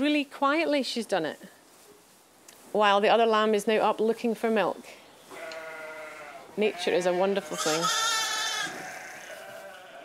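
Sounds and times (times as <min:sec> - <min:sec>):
sheep bleating: 0:05.3 - 0:10.0.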